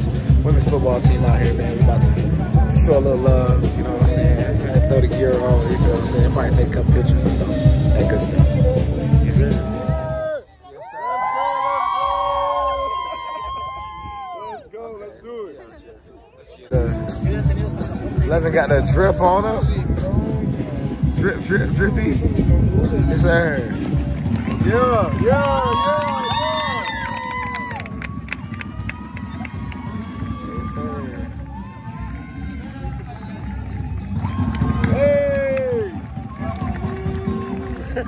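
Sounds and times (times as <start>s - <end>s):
voices calling and shouting outdoors: 0.0s - 38.0s
players yelling a cheer: 9.4s - 15.3s, 24.7s - 33.4s, 34.2s - 38.0s
steady low rumble: 17.2s - 25.2s.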